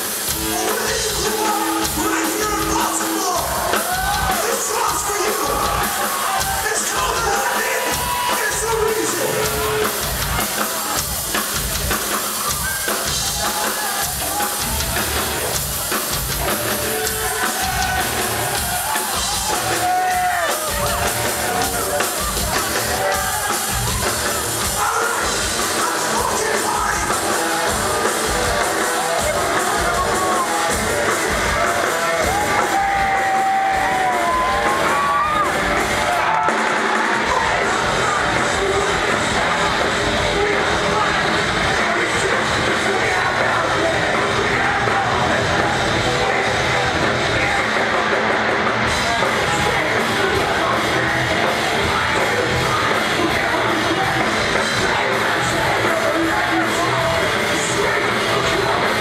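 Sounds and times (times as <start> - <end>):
crowd shouting along: 0.0 - 59.0
drums pounding: 0.0 - 59.0
punk band playing live: 0.0 - 59.0
yelled vocals: 0.0 - 59.0.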